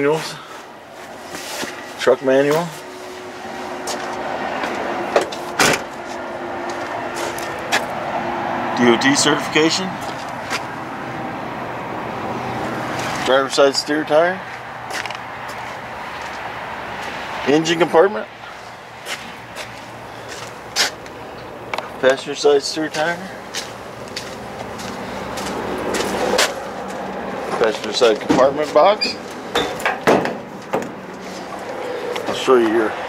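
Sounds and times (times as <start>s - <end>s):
knocks and scuffs of movement: 0.9s - 8.0s, 14.4s - 17.2s, 18.4s - 32.8s
footsteps scuffing on asphalt: 3.8s - 4.8s, 6.0s - 7.9s, 14.5s - 16.4s, 18.5s - 21.1s, 22.9s - 27.2s.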